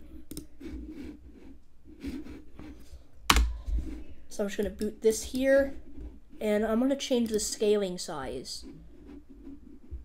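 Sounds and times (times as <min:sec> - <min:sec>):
keyboard and mouse clicks: 0:00.3 - 0:00.5, 0:03.3 - 0:03.5.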